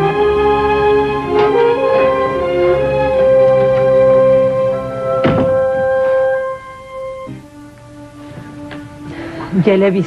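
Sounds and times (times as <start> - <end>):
orchestral held string notes: 0.0 - 10.0.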